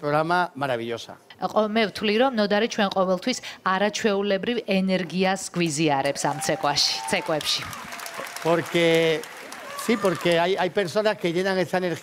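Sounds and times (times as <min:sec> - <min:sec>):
man speaking: 0:00.0 - 0:01.3, 0:09.8 - 0:12.0.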